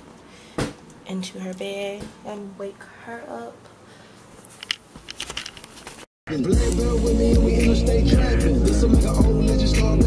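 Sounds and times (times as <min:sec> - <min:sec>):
handling clicks and rustles: 0:04.4 - 0:06.1.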